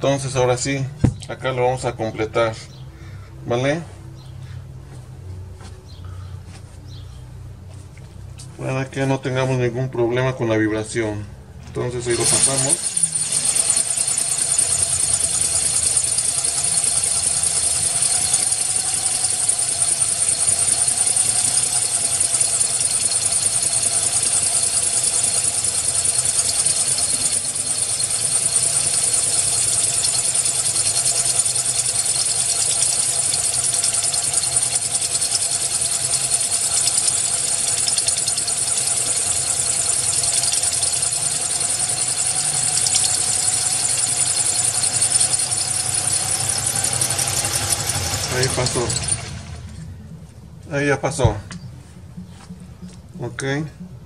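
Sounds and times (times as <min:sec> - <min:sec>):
power drill grinding into glass: 0:12.0 - 0:49.3.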